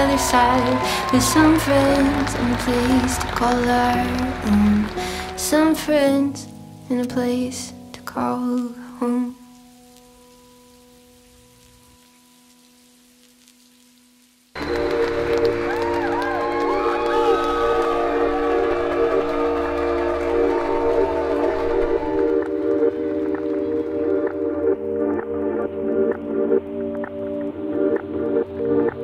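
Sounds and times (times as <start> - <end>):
faint held chord: 14.6 - 26.8
sustained chords with pitch glides: 14.6 - 29.0.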